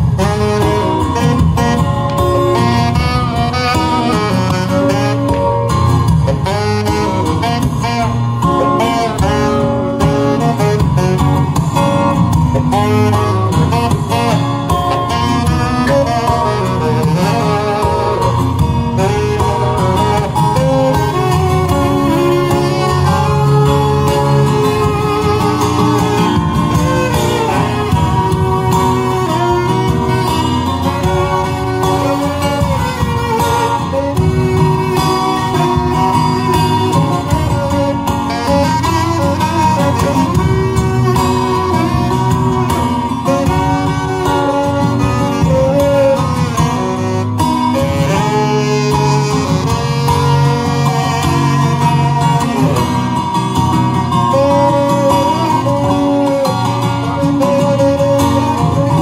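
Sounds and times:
acoustic guitar plucking: 0.0 - 59.0
saxophone melody: 0.0 - 59.0.

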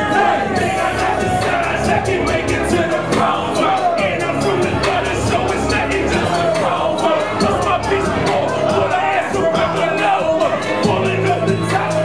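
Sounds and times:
loud beat with hi-hat: 0.0 - 12.0
person rapping into a microphone: 0.0 - 12.0.

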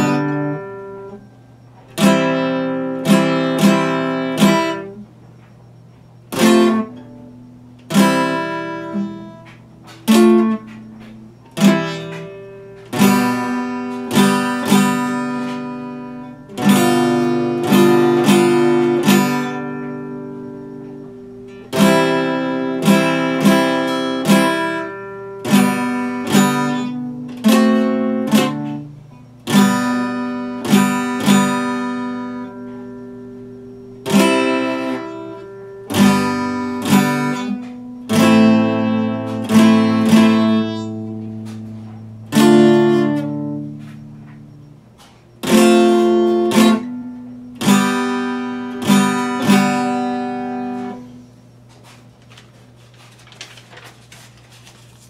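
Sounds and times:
acoustic guitar chords: 0.0 - 55.0.

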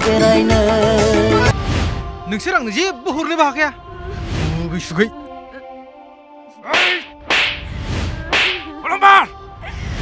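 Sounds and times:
background music: 0.0 - 10.0
sharp slap sound effects: 6.7 - 7.7, 8.3 - 8.8.

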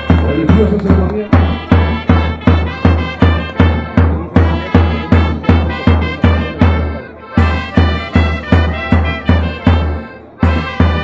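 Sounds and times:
bass drum beat: 0.0 - 11.0
brass band playing dance tune: 0.0 - 11.0.

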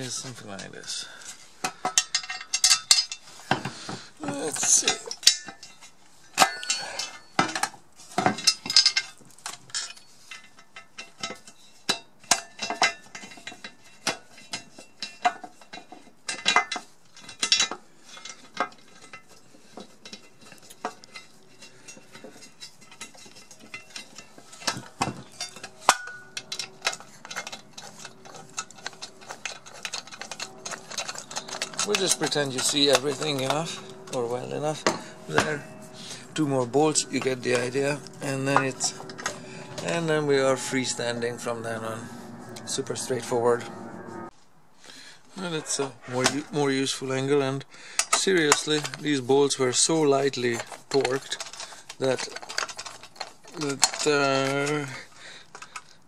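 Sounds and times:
screws clinking: 6.4 - 9.1, 14.4 - 42.0
faint steady hum: 17.2 - 45.2.

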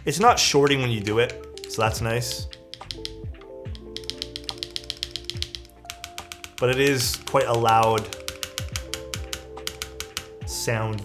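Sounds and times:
background music: 0.0 - 11.0
rapid mechanical keyboard typing: 1.2 - 11.0
keys clacking: 1.3 - 10.4.

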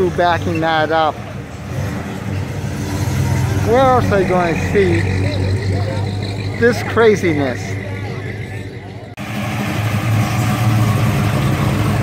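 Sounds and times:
car engine running low: 0.0 - 12.0.

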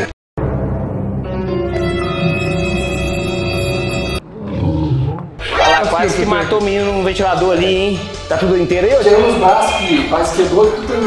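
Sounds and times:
held music chord: 0.4 - 4.2.

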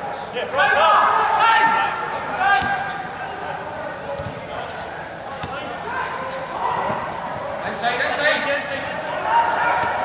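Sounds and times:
players calling out: 0.0 - 10.0
running footsteps on artificial turf: 1.5 - 10.0.

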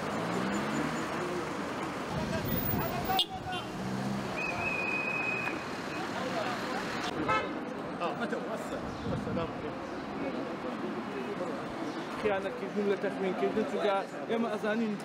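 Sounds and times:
cars passing: 0.0 - 15.0.

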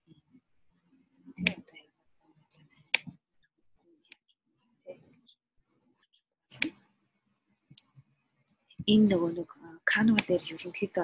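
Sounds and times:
computer mouse clicks: 2.8 - 3.2, 10.1 - 10.4.

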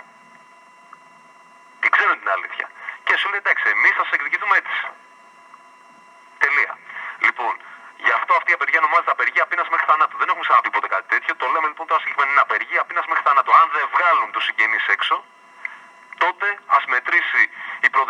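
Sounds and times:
man talking over telephone line: 1.8 - 5.0, 6.4 - 15.3, 16.2 - 18.0.

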